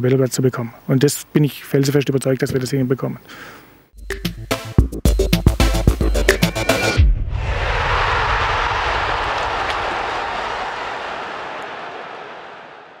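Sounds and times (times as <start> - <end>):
low hit: 7.0 - 10.6
long rushing whoosh: 7.0 - 11.3.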